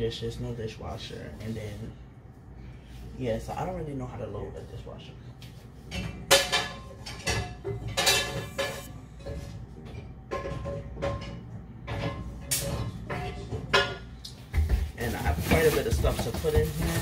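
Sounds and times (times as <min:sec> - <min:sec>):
dishes clinking and clattering: 0:05.9 - 0:17.0.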